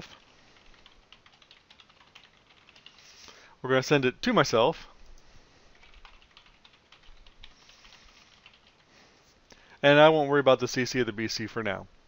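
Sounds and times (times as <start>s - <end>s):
typing on computer keyboard: 0.0s - 3.0s, 5.7s - 8.8s.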